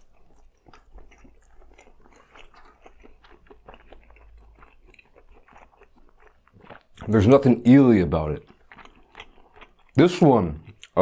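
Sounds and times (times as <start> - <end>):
person chewing food: 0.0 - 11.0.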